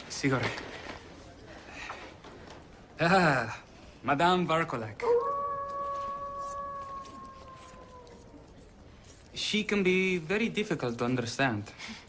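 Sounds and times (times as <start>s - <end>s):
long howl: 5.0s - 8.5s.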